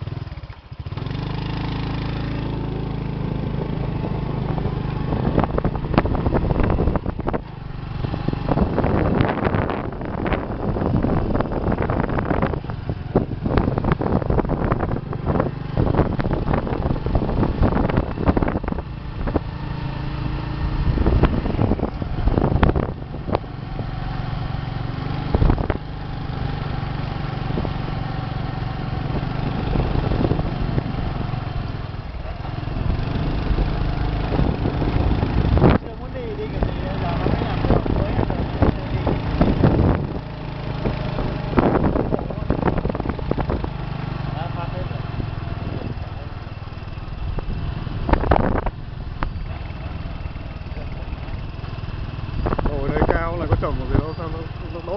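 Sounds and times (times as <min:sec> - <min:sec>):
motorcycle engine running: 0:00.0 - 0:54.9
wind buffeting microphone: 0:01.0 - 0:54.9.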